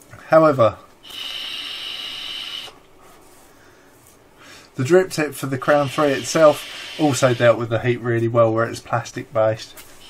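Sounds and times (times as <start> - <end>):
person exhaling vapour: 1.0 - 2.8, 5.8 - 7.5.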